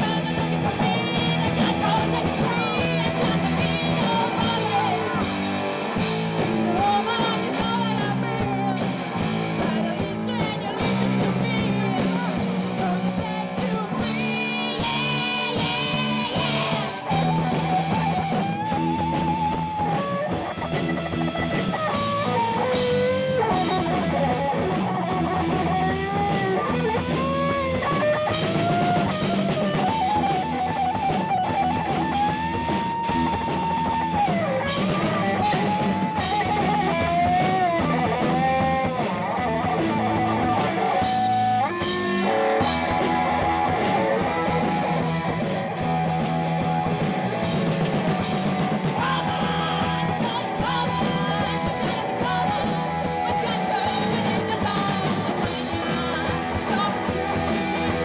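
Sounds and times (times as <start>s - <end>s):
bass guitar: 0.0s - 58.0s
drum kit with crashing cymbals: 0.0s - 58.0s
electric guitar solo: 0.0s - 58.0s.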